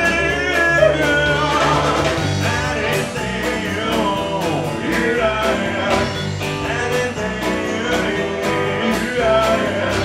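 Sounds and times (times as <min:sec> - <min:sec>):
drums: 0:00.0 - 0:10.0
electric bass: 0:00.0 - 0:10.0
electric guitar: 0:00.0 - 0:10.0
keyboard: 0:00.0 - 0:10.0
man singing: 0:00.0 - 0:10.0.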